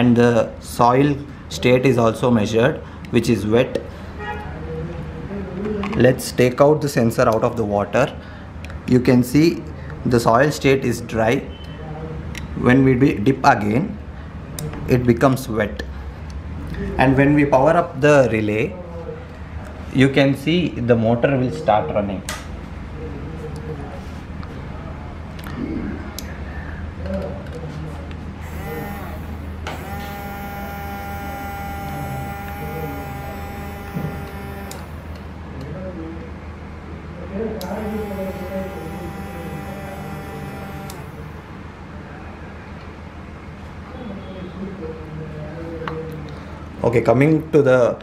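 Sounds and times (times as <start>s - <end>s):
steady low hum: 28.3s - 35.6s, 37.6s - 42.0s
water pump motor whining: 28.4s - 35.3s, 37.6s - 41.6s.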